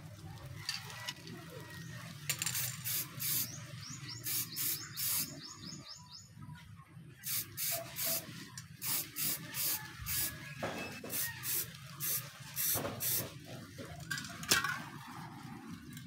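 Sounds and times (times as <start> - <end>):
aerosol can spraying: 2.6 - 3.6, 4.2 - 5.5, 7.2 - 10.4, 11.0 - 13.4.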